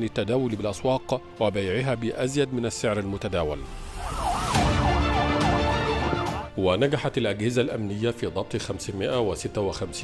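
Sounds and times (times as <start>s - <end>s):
police siren wailing: 3.7s - 6.6s.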